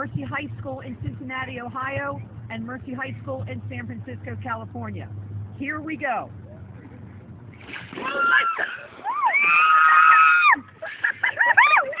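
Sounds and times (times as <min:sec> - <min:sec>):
ice water splashing: 0:07.6 - 0:10.1
people shrieking: 0:08.0 - 0:10.7.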